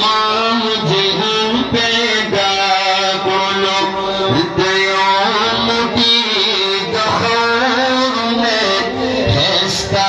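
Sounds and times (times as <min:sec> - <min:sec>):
man singing over loudspeaker: 0:00.0 - 0:10.0.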